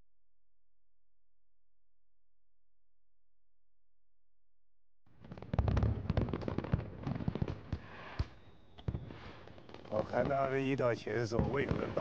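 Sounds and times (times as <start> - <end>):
fireworks bursting and crackling: 5.1 - 12.0.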